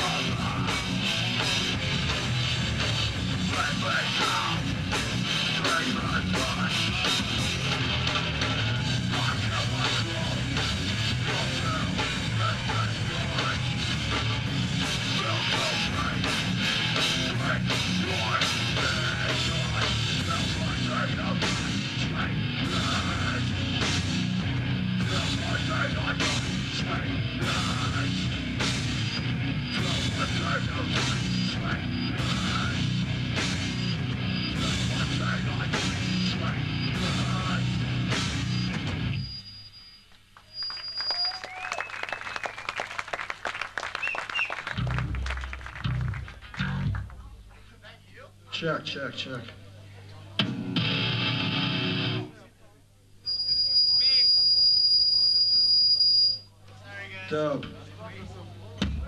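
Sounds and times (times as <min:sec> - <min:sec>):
hardcore band playing live: 0:00.0 - 0:39.2, 0:50.4 - 0:52.2
thin high whine: 0:53.3 - 0:56.5.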